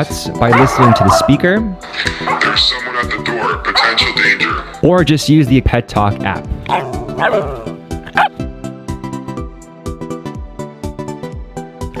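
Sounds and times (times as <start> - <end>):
background music: 0.0 - 12.0
dog barking: 0.5 - 1.4, 6.7 - 8.4.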